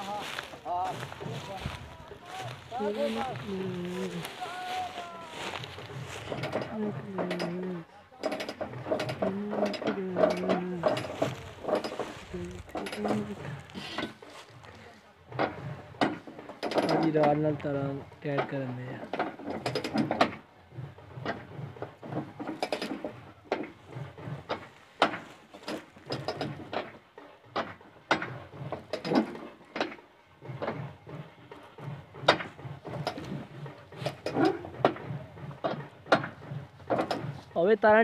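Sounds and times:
metal hitch clicking and clanking: 5.8 - 14.7, 15.3 - 38.0.

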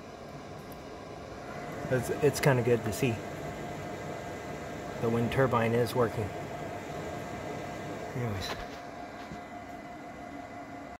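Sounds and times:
appliance fans whirring: 0.0 - 11.0
faint steady hum: 0.0 - 11.0.

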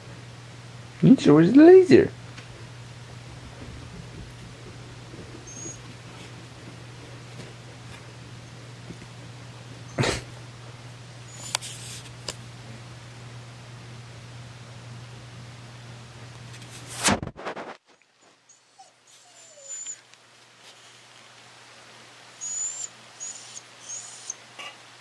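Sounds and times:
low steady hum: 0.0 - 18.1
dog whimpering: 5.4 - 6.0, 18.5 - 20.0, 22.4 - 24.8.

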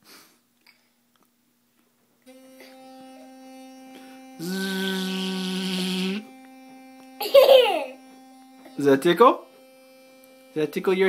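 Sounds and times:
electric toothbrush humming: 2.2 - 11.0.

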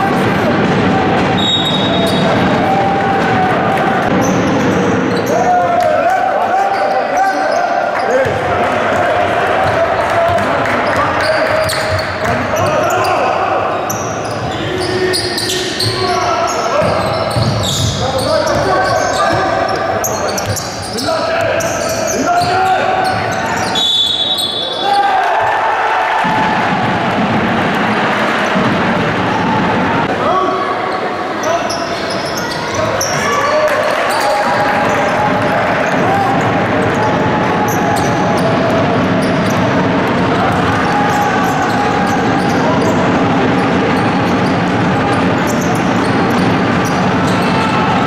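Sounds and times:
crowd voices: 0.0 - 48.0
players shouting: 0.0 - 48.0
referee whistle: 1.4 - 2.3, 21.8 - 25.0
basketball bouncing on court: 8.2 - 8.5, 9.4 - 12.9, 16.7 - 23.7, 26.2 - 29.9.

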